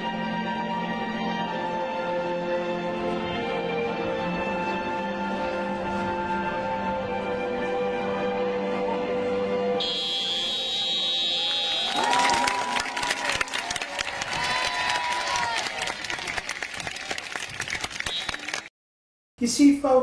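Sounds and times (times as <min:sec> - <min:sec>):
high shrill tone: 0:09.8 - 0:12.0
crowd applauding and cheering: 0:11.2 - 0:18.7.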